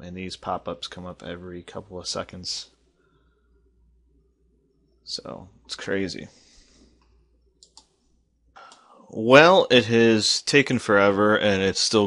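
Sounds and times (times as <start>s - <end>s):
faint noise: 0.0s - 12.0s
faint quick clicks: 7.0s - 8.0s.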